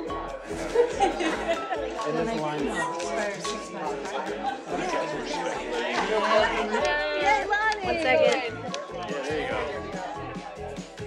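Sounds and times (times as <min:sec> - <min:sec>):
background music: 0:00.0 - 0:11.0
crowd chatter: 0:00.0 - 0:11.0.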